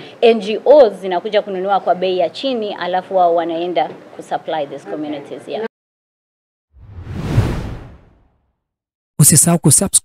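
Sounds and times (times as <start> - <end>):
whoosh sound effect: 6.8 - 8.3.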